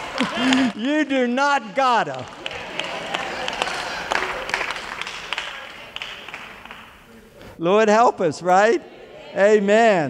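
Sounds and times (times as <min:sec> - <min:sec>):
congregation applauding: 0:00.0 - 0:07.2.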